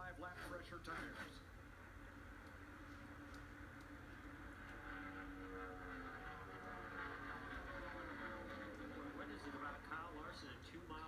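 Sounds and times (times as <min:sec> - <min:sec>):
race car engines on tv speaker: 0:00.0 - 0:11.0.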